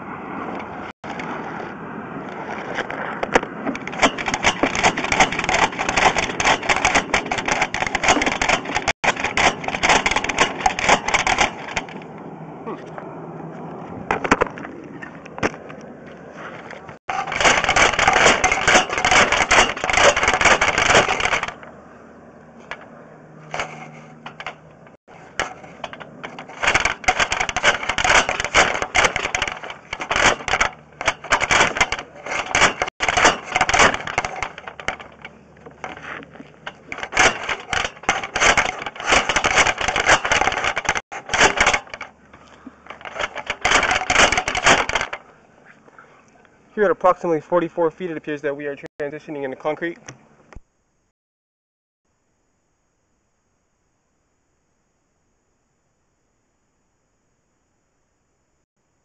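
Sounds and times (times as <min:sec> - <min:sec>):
cable rattling and scraping in pipe: 0:00.5 - 0:12.2, 0:14.0 - 0:21.7, 0:22.6 - 0:45.8.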